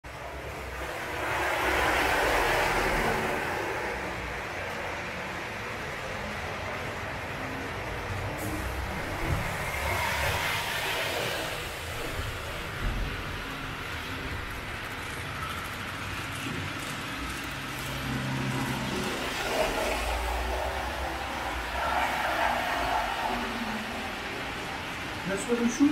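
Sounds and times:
model trains rumbling on track: 0.0 - 25.9.

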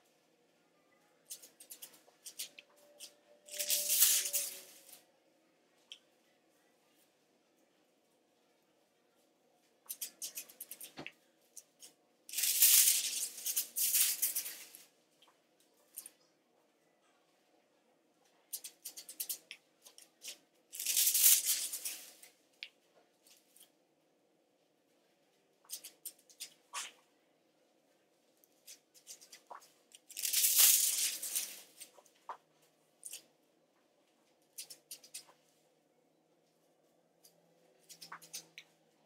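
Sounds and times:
foil rustling and crackling: 3.5 - 5.0, 12.3 - 14.8, 20.7 - 22.3, 30.1 - 31.9.

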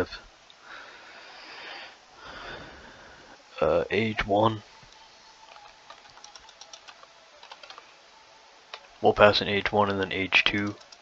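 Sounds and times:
keyboard typing: 4.9 - 7.9, 9.8 - 11.0.

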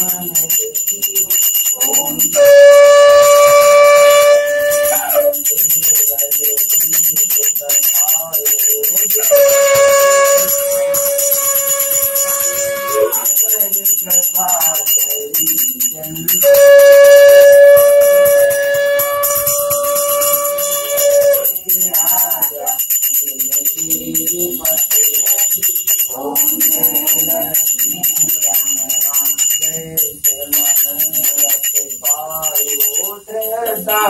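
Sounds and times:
small hand bell ringing: 0.0 - 34.0
conch shell blown: 2.3 - 5.5, 9.2 - 13.4, 16.4 - 21.6.

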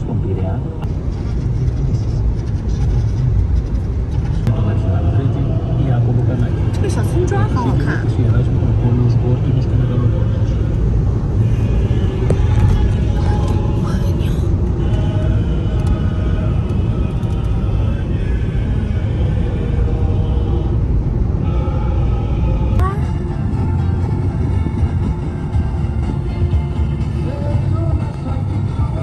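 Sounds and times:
car road and engine rumble: 0.0 - 29.0.

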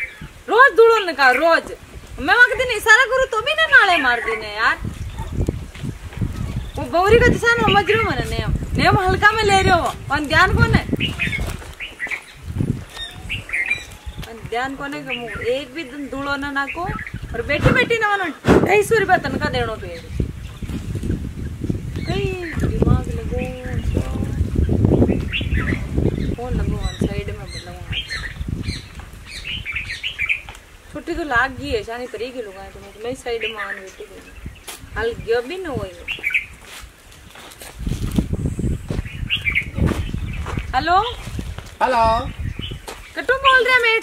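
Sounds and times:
birds chirping: 0.0 - 44.0.

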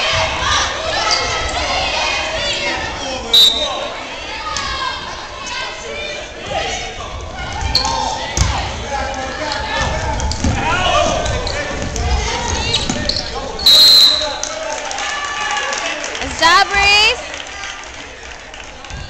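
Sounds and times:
players and spectators shouting: 0.0 - 17.2
referee's whistle blast: 3.3 - 3.8, 13.6 - 14.4.

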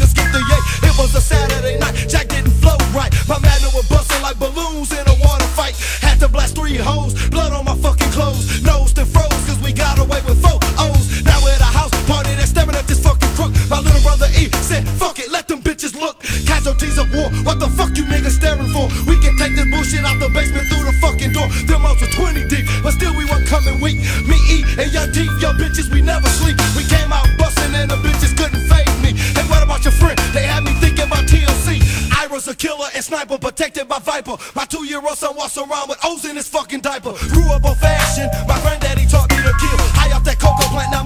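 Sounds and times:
heavy bass beat: 0.0 - 15.0, 22.9 - 32.1, 37.2 - 41.0
person rapping: 0.0 - 41.0.

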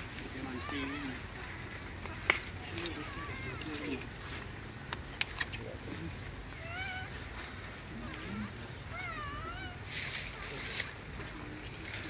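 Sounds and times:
infant monkey squealing: 0.0 - 4.0, 6.5 - 7.2, 8.0 - 9.9.

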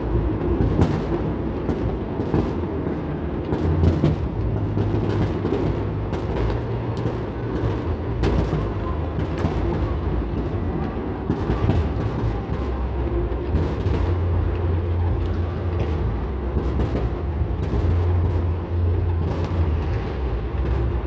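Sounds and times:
distant fireworks rumble: 0.0 - 21.0
fireworks bangs and crackles: 0.0 - 21.0.

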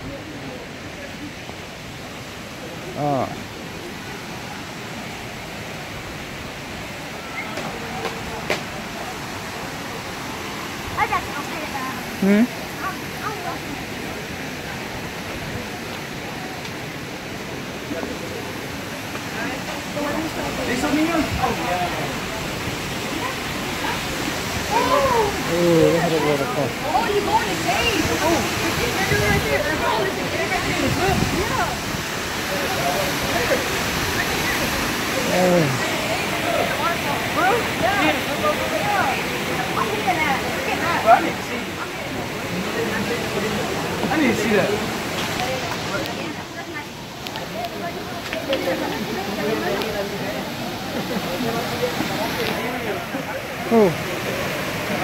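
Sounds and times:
waterfall rushing: 0.0 - 55.0.

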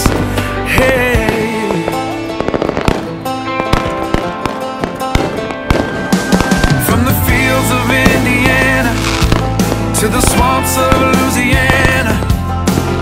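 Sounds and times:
fireworks popping and crackling: 0.0 - 13.0
instrumental music: 0.0 - 13.0.

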